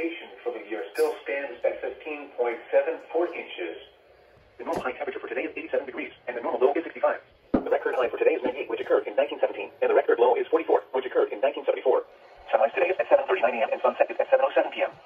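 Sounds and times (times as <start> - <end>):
voice through radio speaker: 0.0 - 3.8, 4.6 - 15.0.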